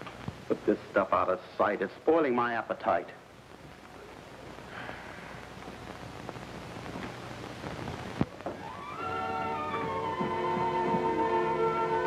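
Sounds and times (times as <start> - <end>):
old tv soundtrack hiss and crackle: 0.0 - 12.0
steady low hum: 0.0 - 12.0.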